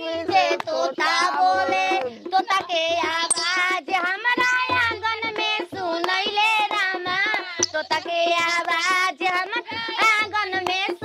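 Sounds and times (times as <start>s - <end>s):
woman singing devotional song: 0.0s - 11.0s.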